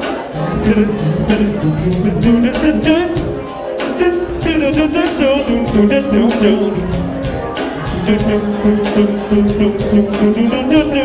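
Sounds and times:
drums on a steady beat: 0.0 - 11.0
person singing: 0.0 - 11.0
electric bass: 0.4 - 11.0.

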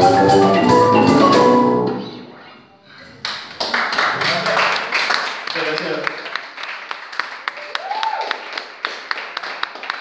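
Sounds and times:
marimba band playing: 0.0 - 2.4
audience applause: 3.3 - 10.0.

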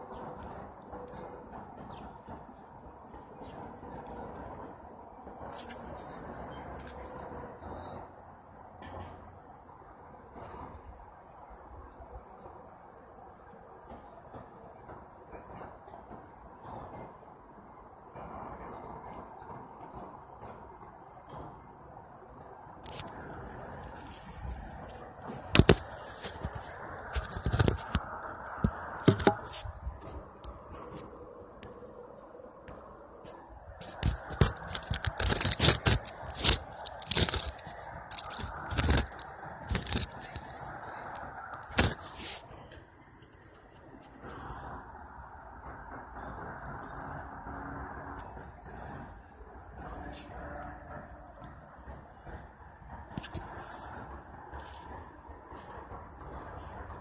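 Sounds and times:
phone microphone handling noise: 22.9 - 31.1, 33.2 - 42.5.

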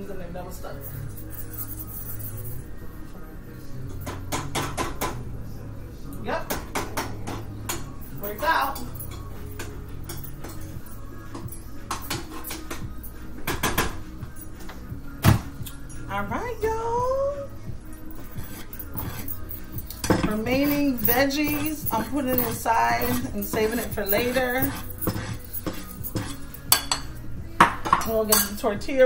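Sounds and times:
metal pots clinking: 18.4 - 28.7.

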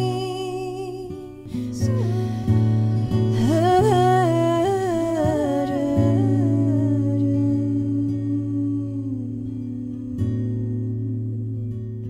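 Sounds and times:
hummed vocal melody: 0.0 - 12.0.

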